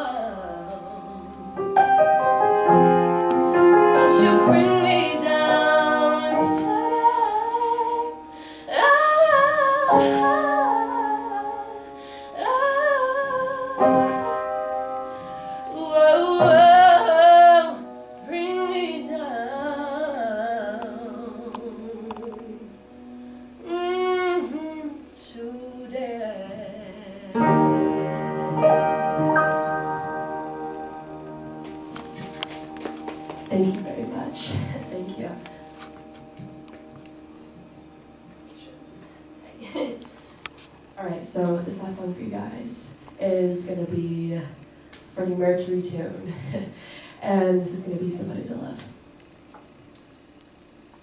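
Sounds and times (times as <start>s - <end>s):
woman singing with vibrato: 0.0s - 1.6s, 3.8s - 14.7s, 15.4s - 22.8s, 23.6s - 31.2s, 33.4s - 35.6s
sustained piano chords: 0.0s - 49.2s.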